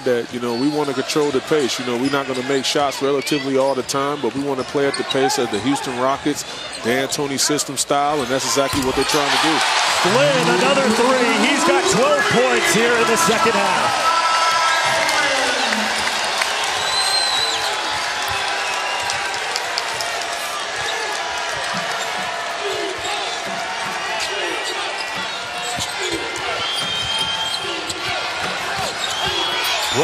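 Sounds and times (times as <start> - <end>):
arena crowd noise: 0.0 - 30.0
people shouting: 9.8 - 15.9
high shoe squeaks: 22.8 - 30.0.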